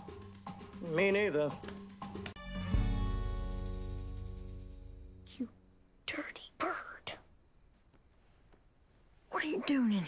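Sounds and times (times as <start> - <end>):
person whispering: 6.1 - 7.3.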